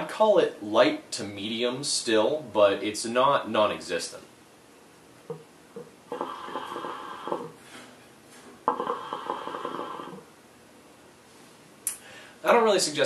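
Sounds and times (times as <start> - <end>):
hookah water bubbling: 6.1 - 7.6, 8.6 - 10.3.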